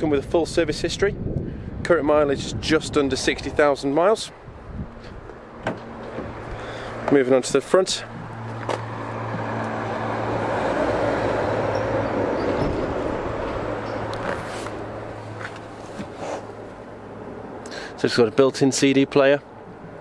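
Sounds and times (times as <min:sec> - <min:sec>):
vehicle passing by: 0:04.7 - 0:18.0.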